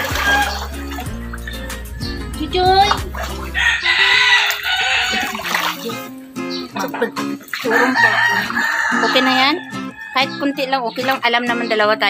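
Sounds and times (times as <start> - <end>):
rooster crowing: 0.0 - 2.4, 3.1 - 5.7, 7.7 - 10.7
music: 0.0 - 12.0.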